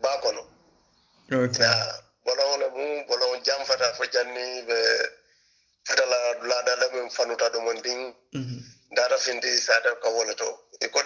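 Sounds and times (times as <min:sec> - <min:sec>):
man speaking: 0:00.0 - 0:00.5, 0:01.3 - 0:05.1, 0:05.9 - 0:11.0.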